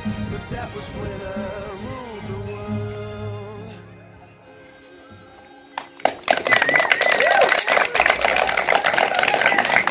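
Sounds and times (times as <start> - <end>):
acoustic guitars chord: 0.0 - 6.3
applause with cheering: 5.8 - 9.9.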